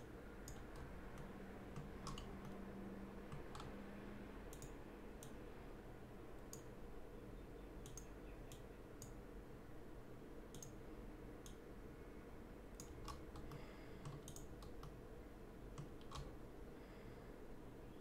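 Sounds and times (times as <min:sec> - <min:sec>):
computer mouse clicks: 0:00.0 - 0:02.6, 0:03.3 - 0:03.8, 0:04.5 - 0:05.4, 0:06.4 - 0:06.7, 0:07.8 - 0:09.2, 0:10.5 - 0:10.8, 0:11.4 - 0:11.6, 0:12.7 - 0:15.0, 0:15.7 - 0:16.4
low room hum: 0:00.0 - 0:18.0.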